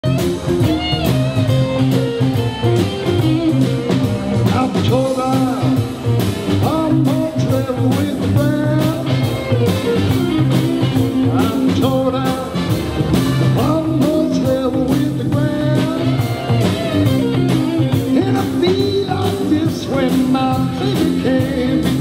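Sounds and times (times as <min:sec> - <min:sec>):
bass line: 0:00.0 - 0:22.0
drum kit steady beat: 0:00.0 - 0:22.0
electric guitars: 0:00.0 - 0:22.0.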